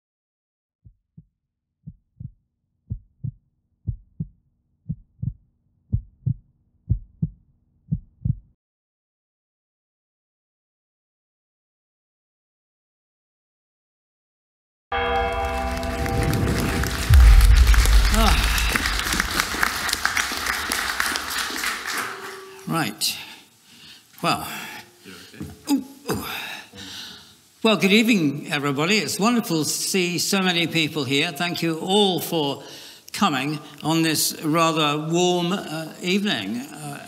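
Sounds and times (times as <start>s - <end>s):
heartbeat thumps: 0.9s - 8.6s, 16.2s - 20.4s
audience applause: 15.1s - 22.6s.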